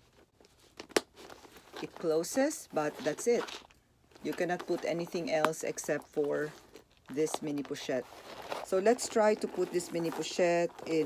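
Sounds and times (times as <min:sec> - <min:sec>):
leather rustling: 0:00.0 - 0:11.0.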